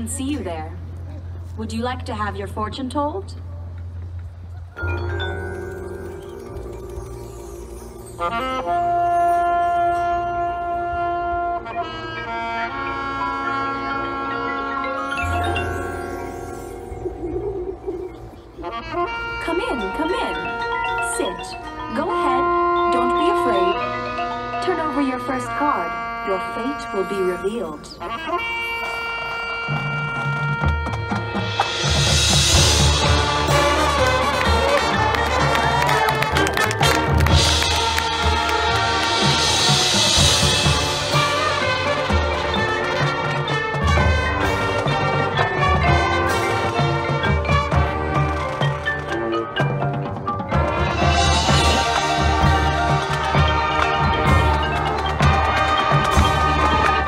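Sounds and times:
marching band music: 0:00.0 - 0:57.0
low brass notes: 0:07.7 - 0:16.6, 0:18.0 - 0:48.6, 0:50.5 - 0:57.0.

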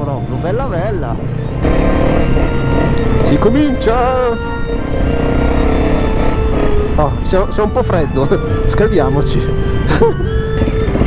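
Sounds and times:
background music: 0:00.0 - 0:11.0
motorcycle engine rumbling: 0:00.0 - 0:11.0.

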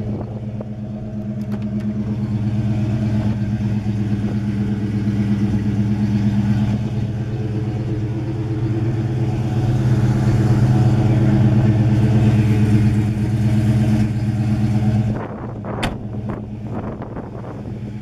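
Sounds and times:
car engine idling: 0:00.0 - 0:18.0.

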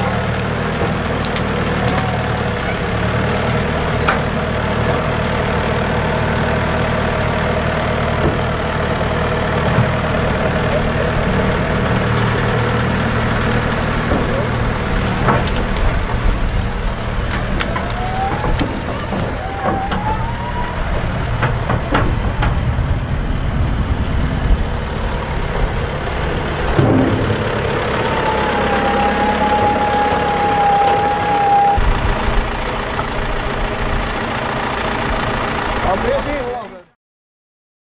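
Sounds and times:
branches cracking: 0:00.0 - 0:03.8, 0:13.4 - 0:21.9, 0:32.5 - 0:35.0
hydraulic whine: 0:00.0 - 0:24.1, 0:24.7 - 0:35.9
tractor engine running: 0:00.0 - 0:36.9.

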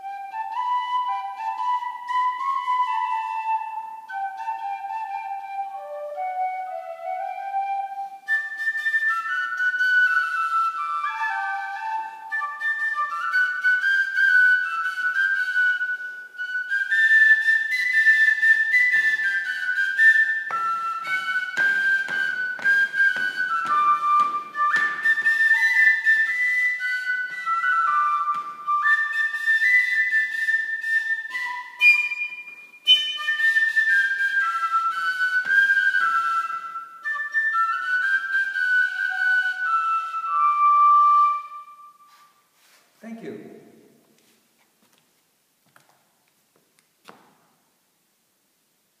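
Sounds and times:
tin whistle melody: 0:00.0 - 0:42.6.

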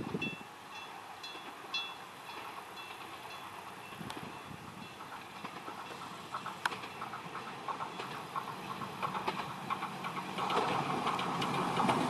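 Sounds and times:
electric train rolling on track: 0:00.0 - 0:12.0.

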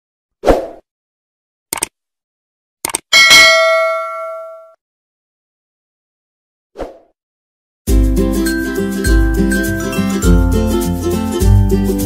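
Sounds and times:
quick double clicks: 0:01.7 - 0:02.0, 0:02.8 - 0:03.1
bell ding: 0:03.2 - 0:04.8.

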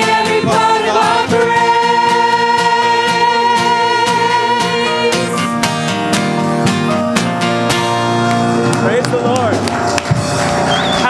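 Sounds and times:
worship band playing: 0:00.0 - 0:11.0.

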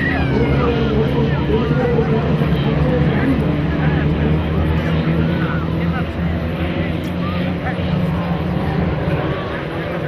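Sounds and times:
distant off-road engine rumble: 0:00.0 - 0:10.0.

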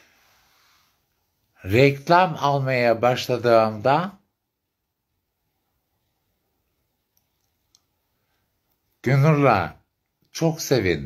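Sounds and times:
faint clicks: 0:07.0 - 0:09.0.

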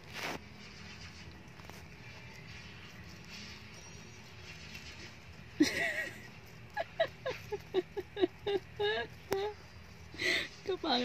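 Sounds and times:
hamster scratching blanket: 0:00.0 - 0:05.4
low steady hum: 0:00.0 - 0:11.0.

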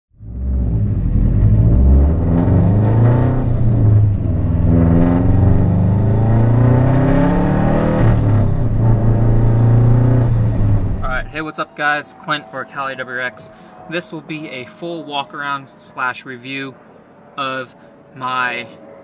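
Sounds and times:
car engine accelerating: 0:00.2 - 0:11.4.

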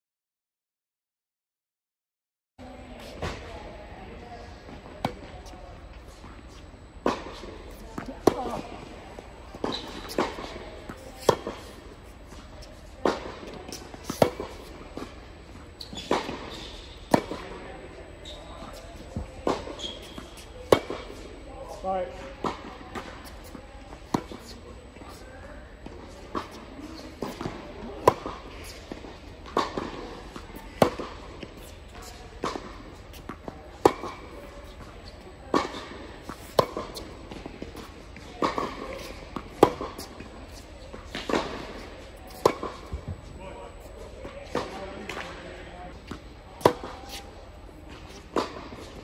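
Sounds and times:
tennis ball bouncing on hard court: 0:07.0 - 0:15.2, 0:15.8 - 0:17.6, 0:18.2 - 0:21.2, 0:25.8 - 0:43.2, 0:46.0 - 0:47.3
tennis ball struck by racquets: 0:07.0 - 0:17.6, 0:18.7 - 0:21.2, 0:26.3 - 0:34.9, 0:35.5 - 0:43.0, 0:46.0 - 0:47.3.

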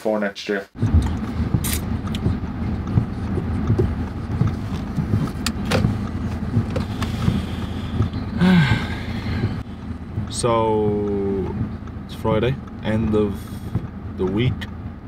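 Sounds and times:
car cabin engine and tyre rumble: 0:00.8 - 0:15.0.

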